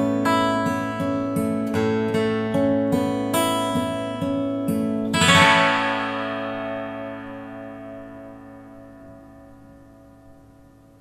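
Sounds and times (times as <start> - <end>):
acoustic guitar picked and strummed: 0.0 - 11.0.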